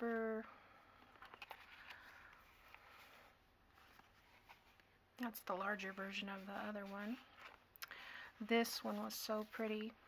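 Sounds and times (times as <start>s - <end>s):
paper cards rustling: 1.0s - 4.9s, 5.8s - 7.7s.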